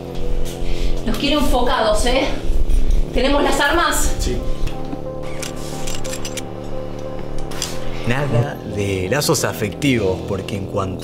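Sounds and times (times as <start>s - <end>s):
low sustained background music: 0.0s - 11.0s.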